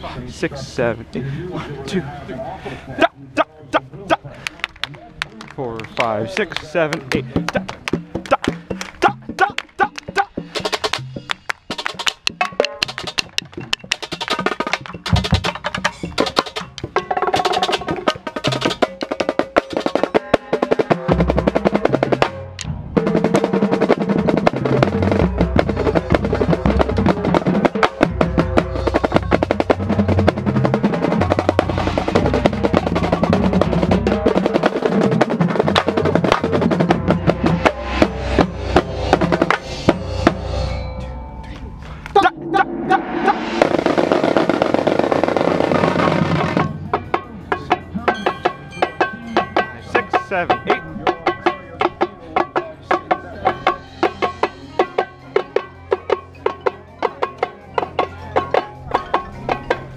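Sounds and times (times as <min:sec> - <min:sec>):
snare drums playing: 0:06.4 - 0:40.4
deep bass drum strokes: 0:21.3 - 0:47.2.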